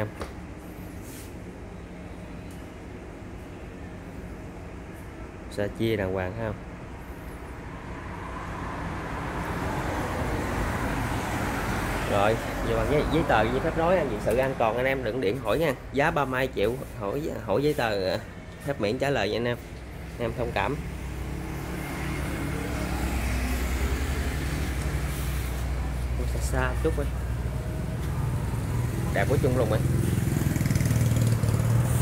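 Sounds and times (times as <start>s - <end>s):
road hiss: 0.6s - 1.6s, 9.2s - 32.0s.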